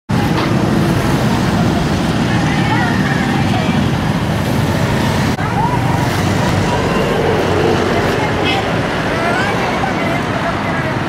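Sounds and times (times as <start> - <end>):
indistinct crowd voices: 0.1 - 11.0
road traffic noise: 0.1 - 11.0.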